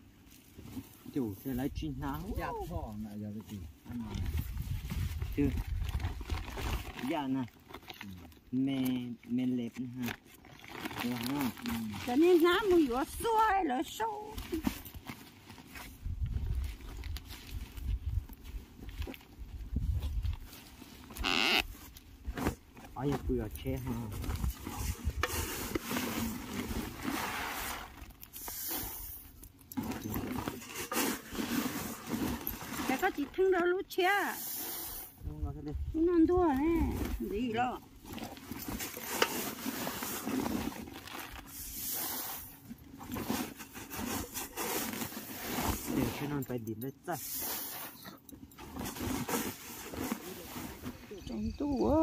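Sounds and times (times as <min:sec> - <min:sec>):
grain and plastic sacks rustling: 0:00.0 - 0:52.0
rice grain rustling: 0:34.3 - 0:35.2
metal bowl scooping grain: 0:34.4 - 0:35.2
faint insect chirping: 0:50.9 - 0:52.0.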